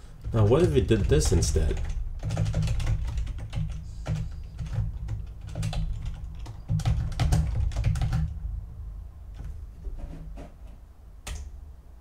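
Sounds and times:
typing on computer keyboard: 0.2 - 8.4.

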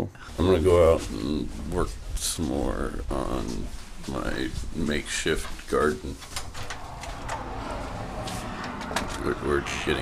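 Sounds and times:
low steady noise: 0.1 - 10.0.

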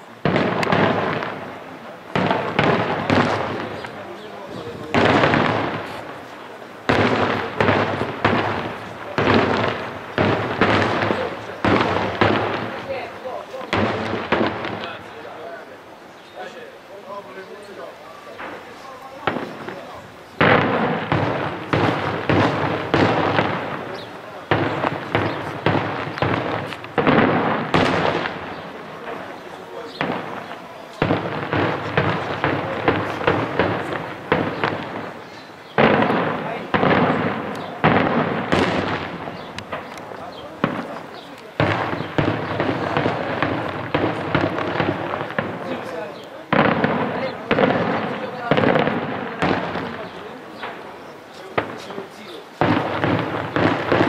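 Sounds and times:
firecracker bangs: 0.0 - 15.8, 18.3 - 54.0
shell bursts crackling: 0.2 - 4.2, 4.9 - 15.3, 18.4 - 54.0.

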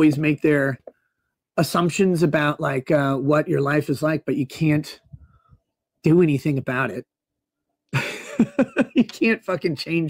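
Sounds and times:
man laughing: 8.0 - 9.5.

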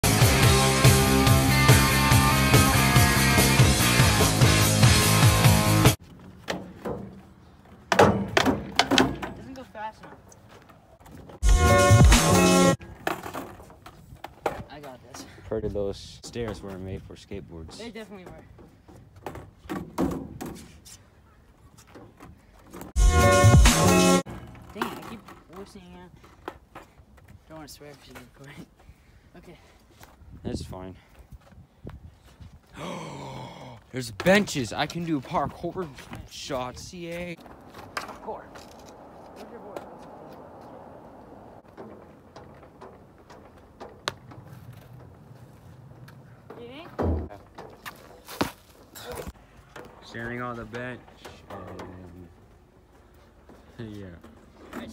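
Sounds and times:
knocks on perforated metal steps: 7.8 - 10.2.

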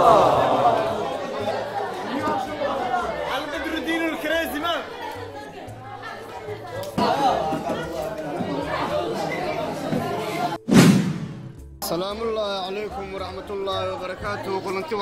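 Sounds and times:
students chattering: 0.0 - 10.6
sudden sharp sound: 10.7 - 11.7.

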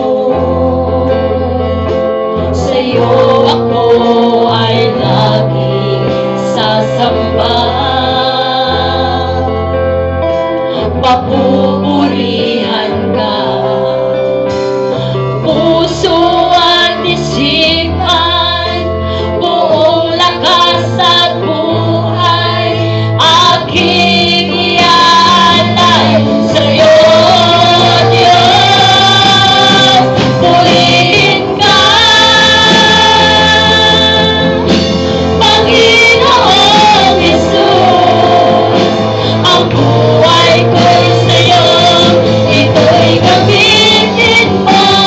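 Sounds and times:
woman singing into a microphone: 0.0 - 9.8, 10.7 - 14.4, 15.0 - 45.0
bass guitar: 0.0 - 45.0
electric guitar: 0.0 - 45.0
drums: 10.7 - 45.0.

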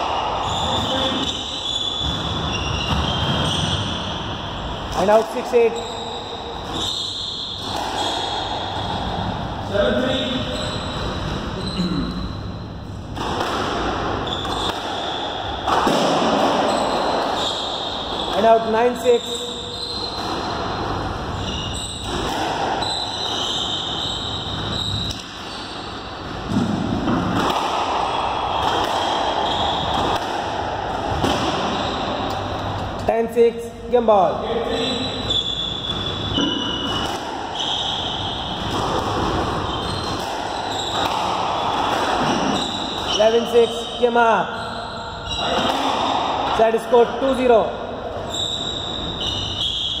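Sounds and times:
squash court background noise: 0.0 - 50.0
steady background hum: 0.0 - 50.0
squash ball thuds: 13.1 - 17.3.

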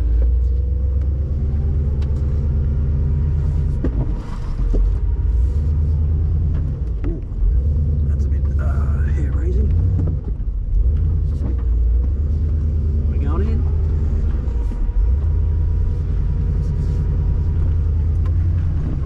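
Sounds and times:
car engine running at low revs: 0.0 - 19.0.

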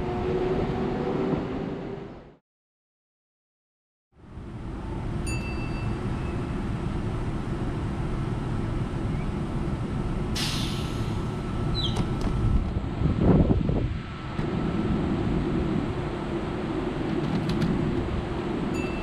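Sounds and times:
air release hiss: 10.4 - 11.2.

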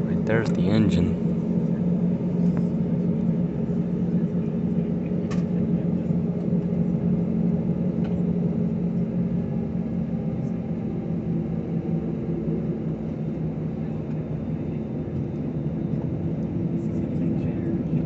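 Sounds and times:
jet engines humming in cabin: 0.0 - 18.0.

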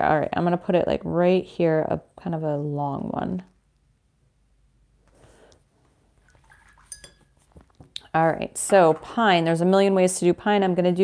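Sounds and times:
clink of painting supplies: 6.7 - 7.4.

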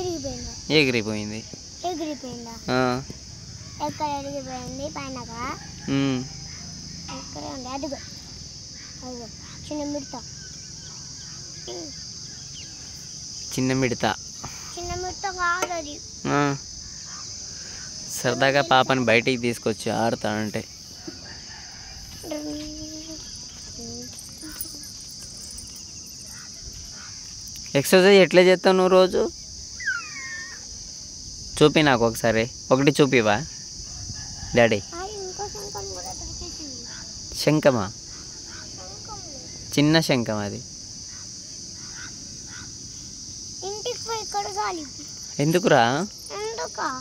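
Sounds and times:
insects chirring: 0.0 - 47.0.

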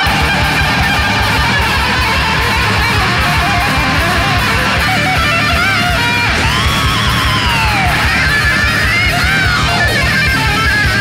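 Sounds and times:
bass and rhythm guitar: 0.0 - 11.0
distorted electric lead guitar: 0.0 - 11.0
heavy drums: 0.0 - 11.0.

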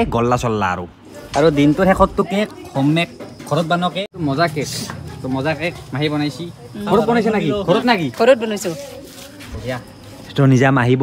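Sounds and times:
people speaking: 0.0 - 11.0.

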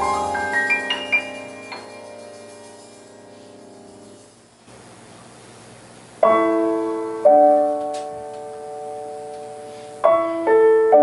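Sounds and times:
keyboard piano chord: 0.0 - 4.4, 6.2 - 11.0.

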